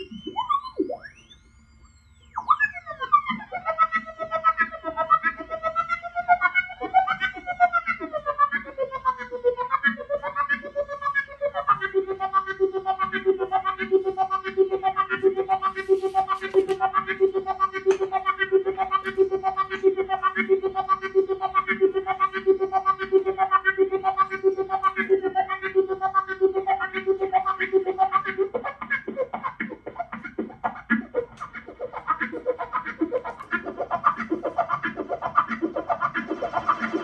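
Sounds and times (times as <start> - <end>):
pulsing synth tone with filter sweep: 0.0 - 37.0.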